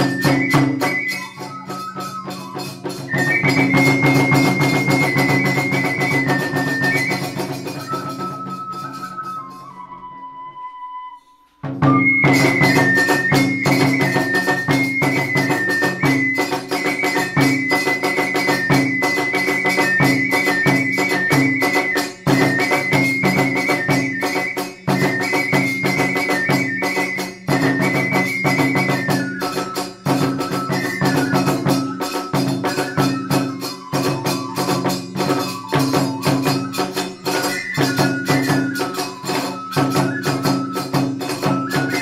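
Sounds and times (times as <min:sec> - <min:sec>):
rapid drumming: 0:00.0 - 0:09.8, 0:11.6 - 0:42.0
bamboo flute high melody: 0:00.0 - 0:42.0.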